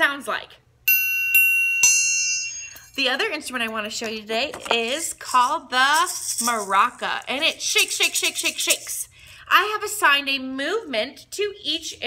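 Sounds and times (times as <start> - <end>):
triangle struck with metal beater: 0.9 - 3.0.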